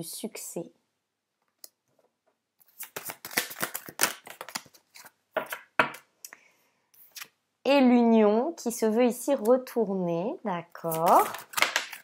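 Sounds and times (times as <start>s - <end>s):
cards clicking and rustling: 2.6s - 5.7s, 10.9s - 12.0s.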